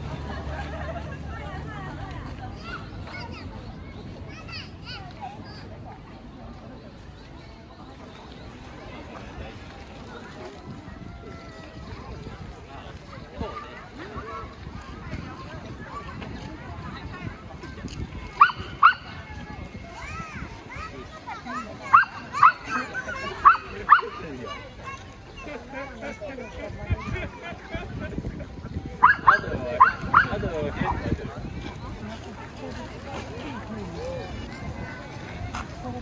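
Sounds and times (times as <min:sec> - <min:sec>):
faint chatter of people: 0:00.0 - 0:36.0
voices of passers-by: 0:00.0 - 0:36.0
children's high-pitched calls: 0:17.9 - 0:25.7.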